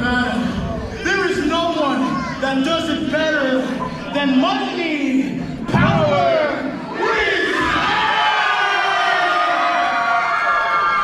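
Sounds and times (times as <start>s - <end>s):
crowd shouting together: 5.7s - 11.0s.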